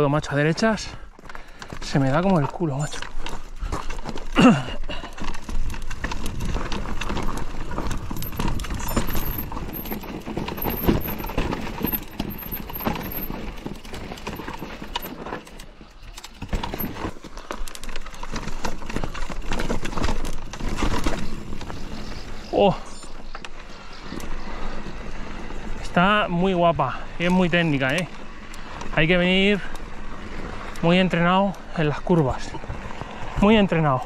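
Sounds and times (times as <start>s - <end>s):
bike knocking and rattling: 0.0s - 34.0s
tyres crunching over gravel: 0.0s - 34.0s.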